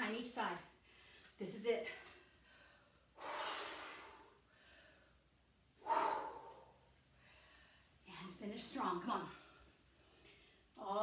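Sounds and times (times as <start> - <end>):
woman exhaling heavily: 5.8 - 6.8.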